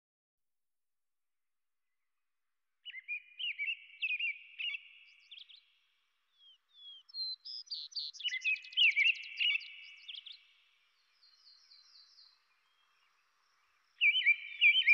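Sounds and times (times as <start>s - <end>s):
birds singing whistled phrases: 2.8s - 14.9s.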